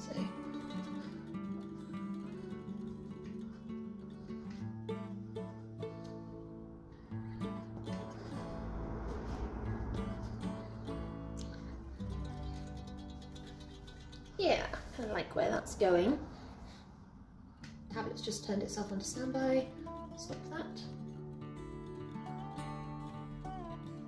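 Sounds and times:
plucked guitar music: 0:00.0 - 0:15.4, 0:17.8 - 0:24.0.

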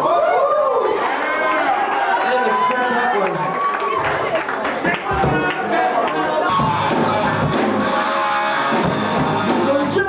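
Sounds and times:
bar crowd talking: 0:00.0 - 0:10.0.

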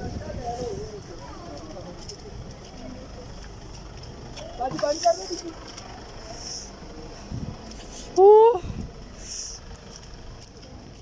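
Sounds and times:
faint voices: 0:00.0 - 0:11.0
vehicle engines idling: 0:00.0 - 0:11.0.

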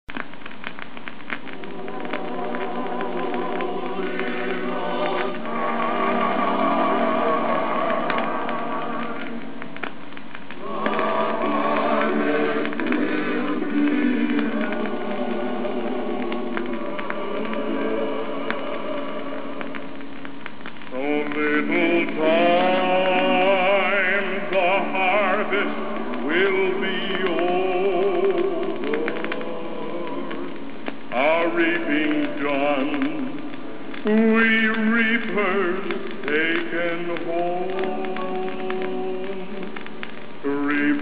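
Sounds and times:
instrumental gospel music: 0:00.1 - 0:41.0.

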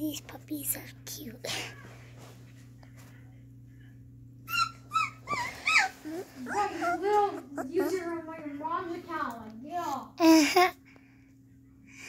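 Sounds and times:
puppies whimpering: 0:04.4 - 0:08.3.

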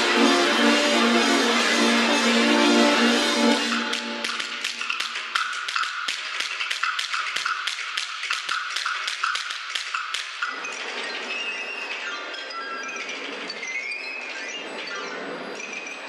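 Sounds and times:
sustained wind ensemble: 0:00.0 - 0:04.8
dry pitched percussion taps: 0:03.6 - 0:10.6.

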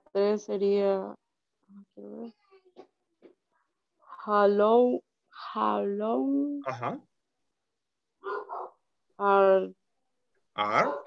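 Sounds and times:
dog barking: 0:08.2 - 0:08.8, 0:10.6 - 0:11.0.

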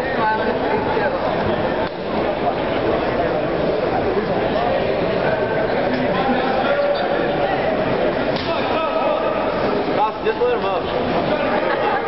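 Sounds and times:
crowd calling out and talking: 0:00.0 - 0:12.0.

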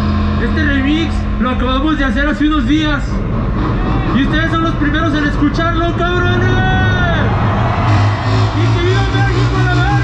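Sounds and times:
heavy bass: 0:00.0 - 0:10.0.

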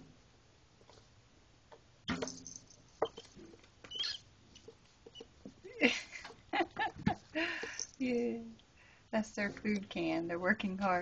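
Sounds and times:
rats squeaking: 0:03.0 - 0:05.4.

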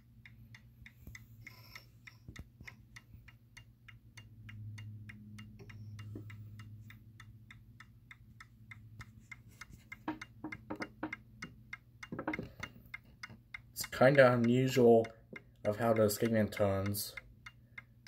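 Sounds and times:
clock ticking: 0:00.0 - 0:18.0.

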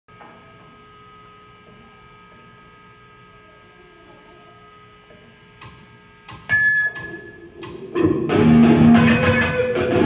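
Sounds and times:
guitar amplifier hum and buzz: 0:00.1 - 0:10.0.

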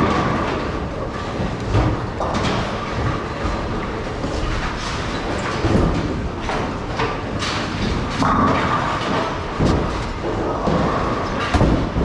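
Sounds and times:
bowling balls rumbling down lanes: 0:00.0 - 0:12.0.

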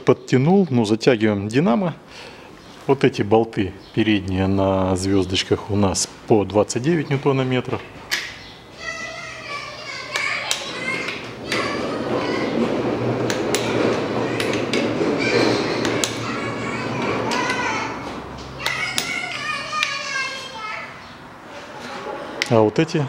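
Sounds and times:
children talking and calling: 0:03.6 - 0:23.0
sharp clicks and knocks: 0:10.1 - 0:16.4, 0:17.0 - 0:20.0.

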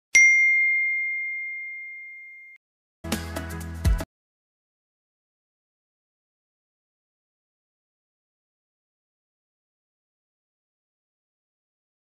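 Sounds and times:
bell-like ding: 0:00.1 - 0:02.6.

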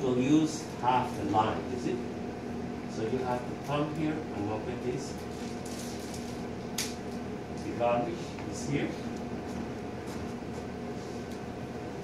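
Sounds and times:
steady low hum: 0:00.0 - 0:12.0
packaging ripping: 0:05.3 - 0:07.0.

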